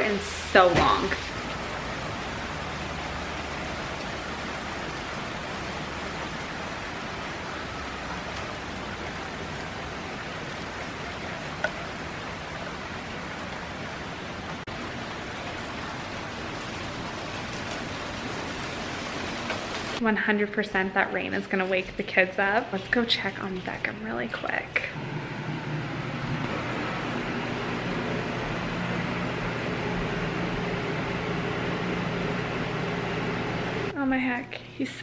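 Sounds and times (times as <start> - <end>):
heavy rain on pavement: 0.0 - 20.0.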